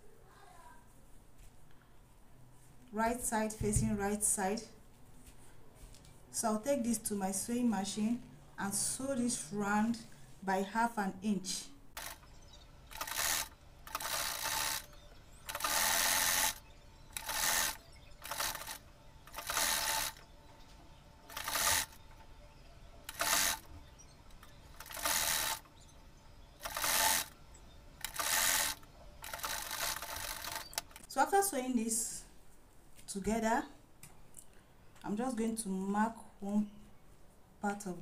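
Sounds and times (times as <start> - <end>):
electric sewing machine stitching: 12.0 - 12.3, 12.9 - 20.2, 21.3 - 22.0, 23.1 - 23.7, 24.4 - 25.7, 26.6 - 27.4, 28.0 - 31.0.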